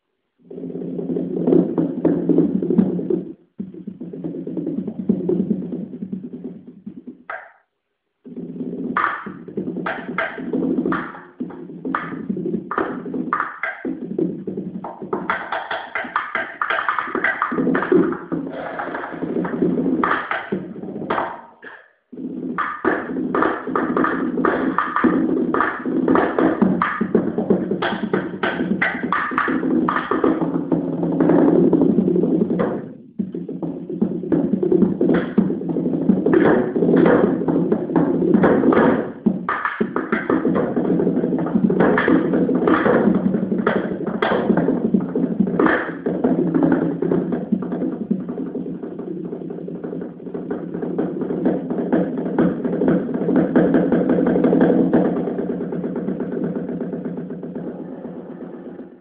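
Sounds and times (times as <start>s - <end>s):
fast drum kit playing: 0.7s - 7.4s, 8.3s - 57.8s.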